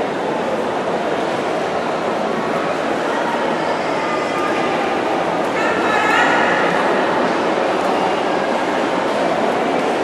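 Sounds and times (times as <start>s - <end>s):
crowd din echoing in pool hall: 0.0s - 10.0s.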